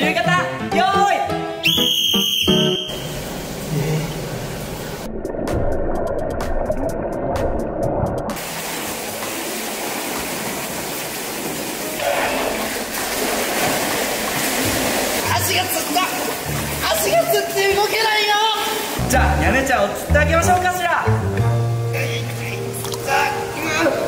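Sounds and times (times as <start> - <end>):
background music: 0.0 - 3.2, 11.7 - 24.0
shrill whistle blast: 1.6 - 3.2
swimmer splashing: 2.7 - 19.0
muffled underwater bubbly clicks: 5.0 - 8.4.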